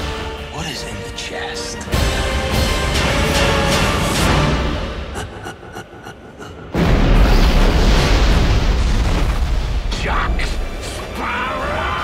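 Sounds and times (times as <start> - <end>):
orchestral score: 0.0 - 7.0.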